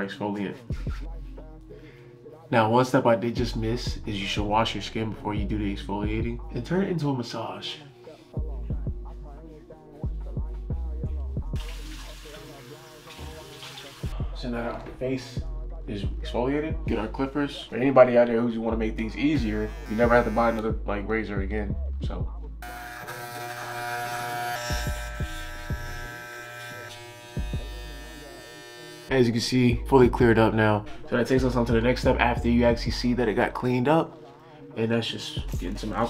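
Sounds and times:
hip hop music with a beat: 0.1s - 26.1s, 26.7s - 36.0s
electric hair clippers buzzing: 19.6s - 20.6s, 22.6s - 29.1s.

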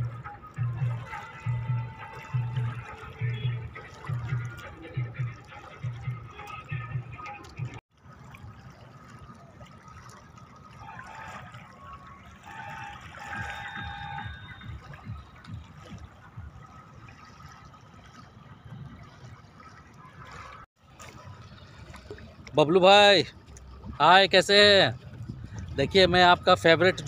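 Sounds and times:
river water lapping: 0.0s - 27.0s
low rumbling: 23.3s - 27.0s.

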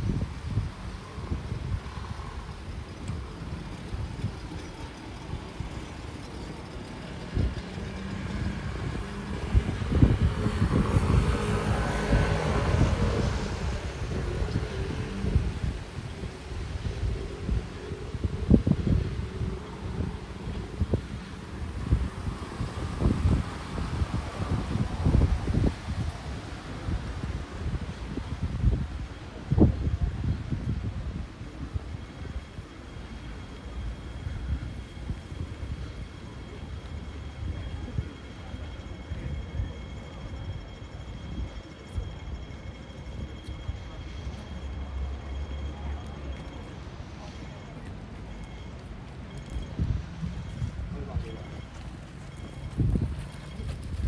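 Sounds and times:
wind buffeting microphone: 0.0s - 54.0s
car passing: 6.2s - 28.5s.

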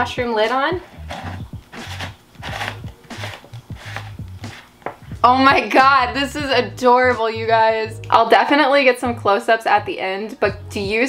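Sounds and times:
quiet background music with bass: 0.0s - 11.0s
plastic lid rubbing and clicking: 0.8s - 4.7s.

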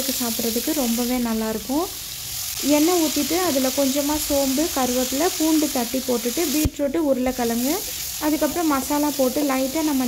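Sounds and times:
woman talking: 0.0s - 1.9s, 2.6s - 10.0s
vegetables sizzling in hot oil: 0.0s - 10.0s.

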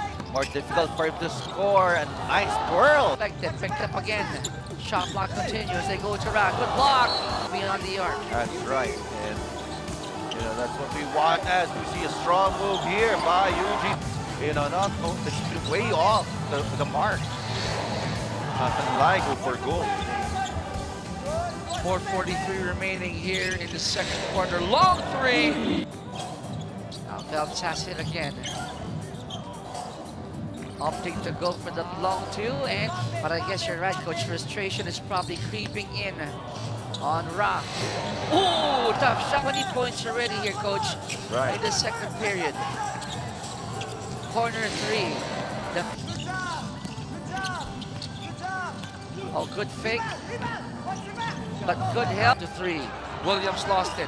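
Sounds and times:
shoe squeaks on hardwood: 0.0s - 2.0s, 4.3s - 5.7s, 7.0s - 7.6s, 8.7s - 10.6s, 12.0s - 13.9s, 19.8s - 22.5s, 26.1s - 31.7s, 36.9s - 37.4s, 38.4s - 49.7s
arena crowd noise: 0.0s - 54.0s.

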